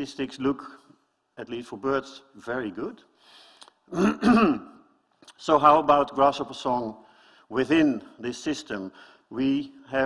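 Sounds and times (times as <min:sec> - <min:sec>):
faint breath: 0:03.2 - 0:03.7, 0:07.0 - 0:07.5, 0:08.9 - 0:09.3
man clearing throat: 0:03.9 - 0:04.8.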